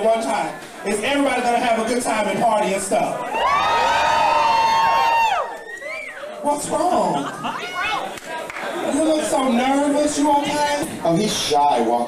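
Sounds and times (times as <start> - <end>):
crowd whooping: 3.2 - 6.4.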